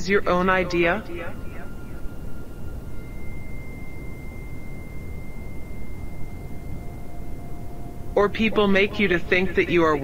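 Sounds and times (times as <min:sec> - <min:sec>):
high pure tone: 0:00.0 - 0:10.0
low background hum: 0:00.0 - 0:10.0
lower pure tone: 0:00.0 - 0:10.0.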